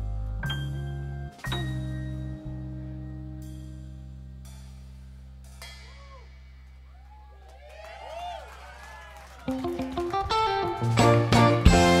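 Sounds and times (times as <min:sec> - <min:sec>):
rock band low chord ringing: 0:00.0 - 0:06.9, 0:09.6 - 0:12.0.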